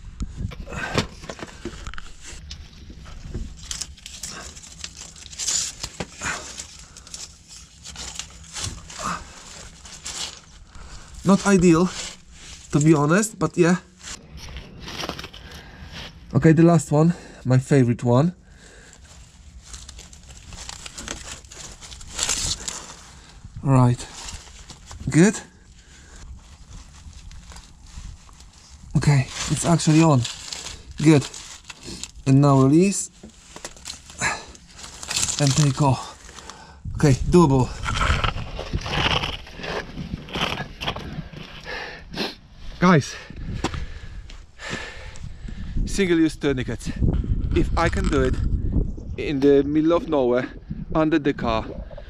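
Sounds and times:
plastic rustling and crackling: 0.3s - 15.8s, 18.5s - 41.8s
clothing dragging on gritty ground: 1.4s - 16.3s, 19.0s - 41.8s.

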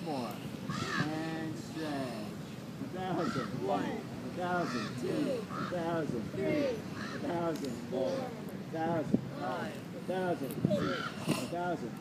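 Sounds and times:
crows cawing: 0.7s - 1.1s, 3.1s - 3.5s, 4.6s - 5.8s, 6.9s - 7.3s, 10.8s - 11.4s.

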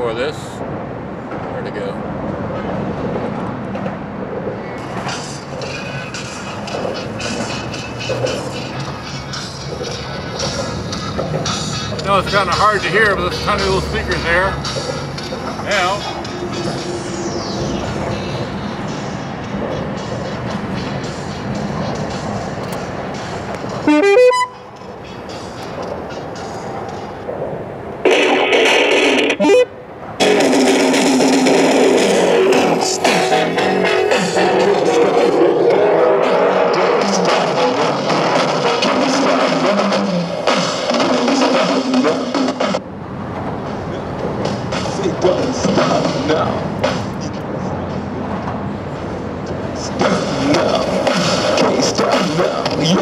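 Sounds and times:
music from a boombox: 4.8s - 27.2s, 28.1s - 42.8s, 43.7s - 48.1s, 48.9s - 53.0s.

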